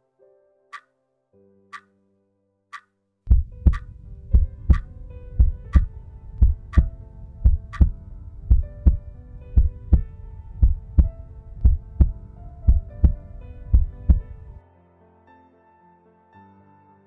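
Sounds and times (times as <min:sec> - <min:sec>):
soft background music: 0:00.0 - 0:17.0
heartbeat thumps: 0:03.3 - 0:14.4.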